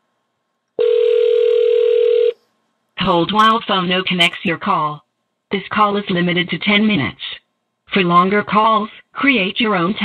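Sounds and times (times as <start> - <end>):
telephone ringback tone: 0.8 - 2.4.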